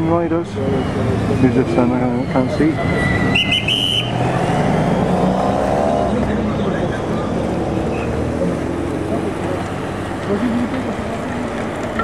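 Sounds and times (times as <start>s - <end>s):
motor vehicles passing: 0.0s - 12.0s.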